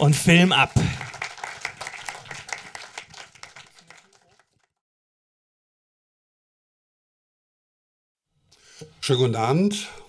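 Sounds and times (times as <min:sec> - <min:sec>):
audience applauding: 0:00.3 - 0:04.8.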